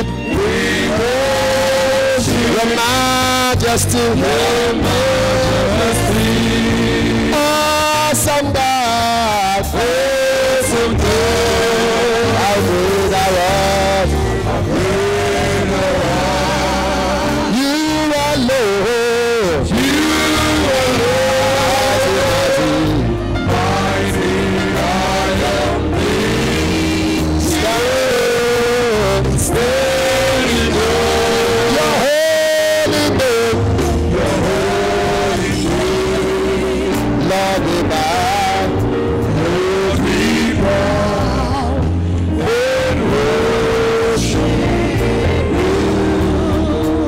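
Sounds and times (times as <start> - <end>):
live worship band playing: 0.0 - 47.0.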